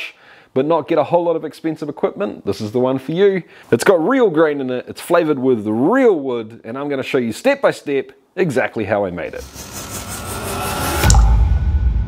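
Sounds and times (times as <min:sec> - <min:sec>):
deep hit: 0:09.4 - 0:12.0
low rumble: 0:09.4 - 0:12.0
rising whoosh: 0:09.4 - 0:12.0.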